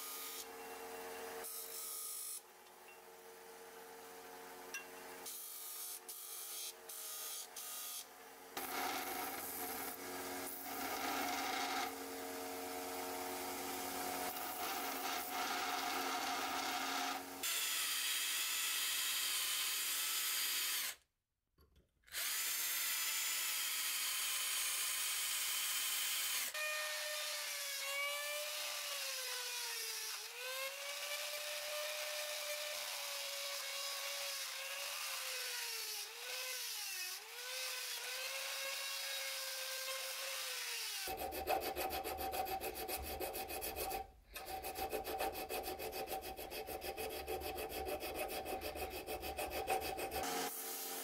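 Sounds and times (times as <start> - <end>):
belt grinder: 8.6 - 12.0, 12.9 - 21.0, 22.1 - 51.0
disc sander grinding: 44.4 - 50.5.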